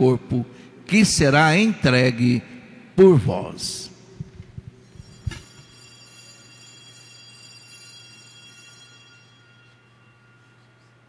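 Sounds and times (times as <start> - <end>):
altar bell ringing: 4.8 - 11.0.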